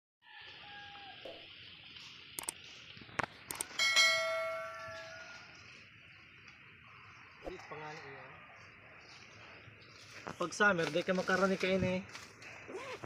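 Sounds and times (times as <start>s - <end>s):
high drone of insects: 0.2s - 13.0s
quick clicks: 2.4s - 2.6s, 3.4s - 3.8s
bright bell ding: 3.7s - 5.2s.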